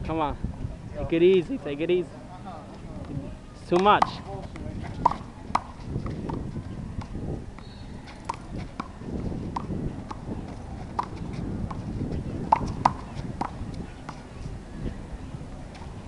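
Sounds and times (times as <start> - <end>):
hands slapping ball: 3.7 - 6.4, 11.0 - 11.2.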